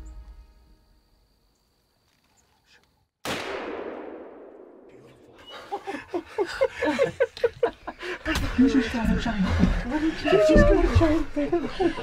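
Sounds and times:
gunshot: 3.2s - 5.0s.

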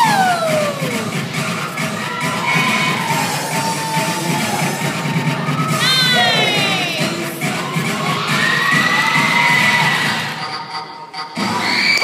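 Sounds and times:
dance music over speakers: 0.0s - 11.8s.

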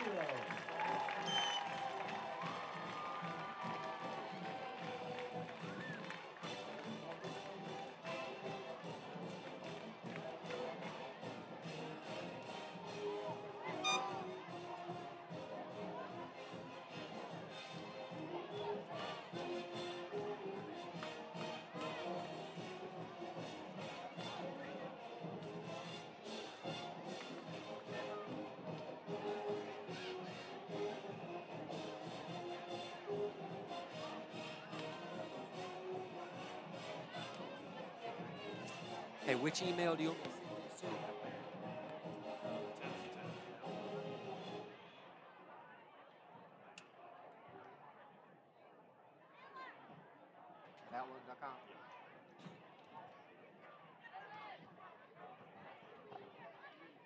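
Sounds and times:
music playing: 0.0s - 44.8s
stadium crowd chatter: 0.0s - 57.0s.

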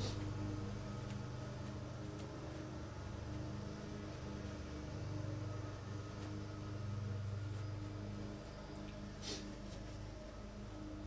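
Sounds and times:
faint steady tones: 0.0s - 11.0s
low electrical hum: 0.0s - 11.0s.

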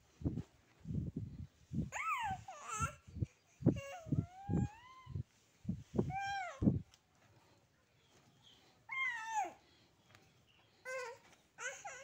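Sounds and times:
baby whimpering cries: 10.8s - 12.0s.

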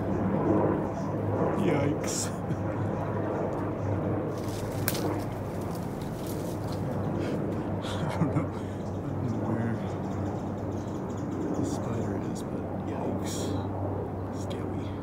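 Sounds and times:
distant helicopter drone: 0.0s - 15.0s
light rustling: 4.4s - 7.0s.

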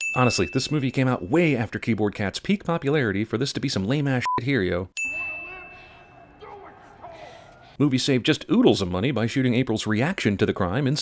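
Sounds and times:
bright bell ding: 0.0s - 1.0s, 5.0s - 6.4s.

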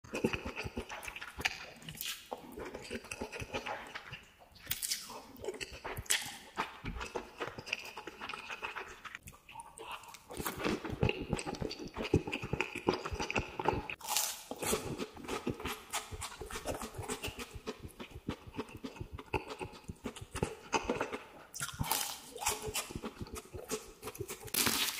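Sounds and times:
noodles slurped and chewed: 0.0s - 24.9s.

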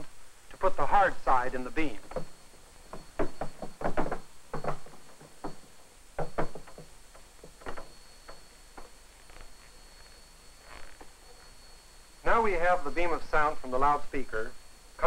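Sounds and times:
faint steady high tone: 0.0s - 15.0s
panel knocks and thumps on stage: 2.9s - 7.9s.

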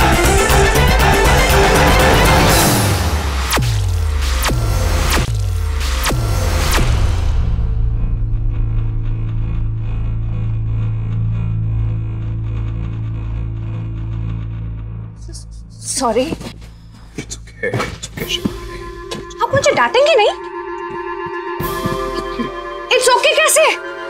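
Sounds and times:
sharp hits with low booms: 2.1s - 15.8s
low held drone: 7.3s - 24.0s.

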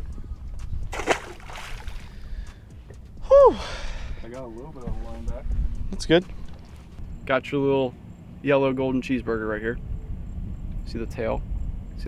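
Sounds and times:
fish splashing into water: 0.9s - 2.2s.

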